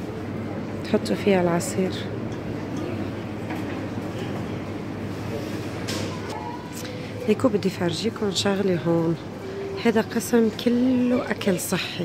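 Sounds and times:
supermarket background hum: 0.0 - 12.0.

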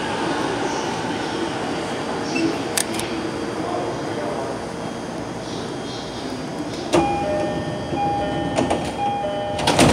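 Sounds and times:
two-tone door chime: 7.0 - 9.9.

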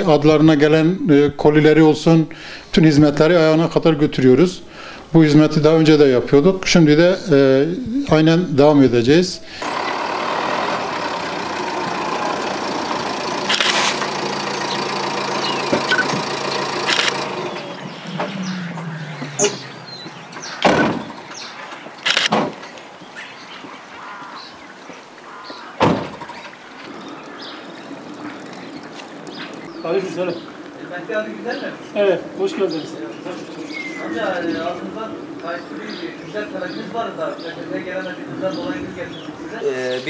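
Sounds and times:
van engine running: 9.5 - 22.3
sharp knocks: 20.5 - 21.4, 25.8 - 26.3.

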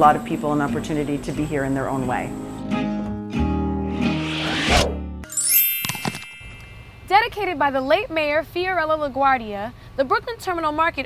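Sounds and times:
rising swoosh: 3.8 - 6.9
bright chime: 5.2 - 7.2.

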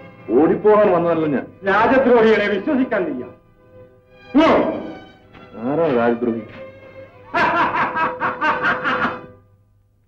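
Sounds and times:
held note of background music: 1.6 - 7.2
man laughing: 7.3 - 9.3.

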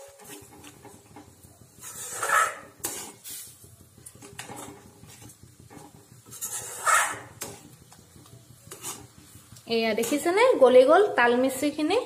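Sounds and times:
spoon scraping and knocking pan: 0.0 - 10.6
metal spoon stirring in a pan: 0.0 - 10.8.

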